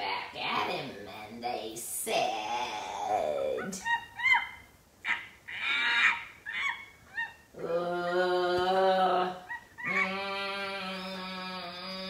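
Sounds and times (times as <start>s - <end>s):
person imitating monkey chatter: 3.2s - 8.2s, 9.2s - 11.2s.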